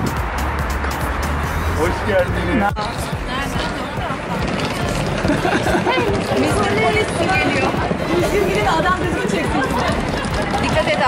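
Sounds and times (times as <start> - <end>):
women chatting: 2.7 - 11.0
suitcase wheels rolling on paving: 3.1 - 11.0.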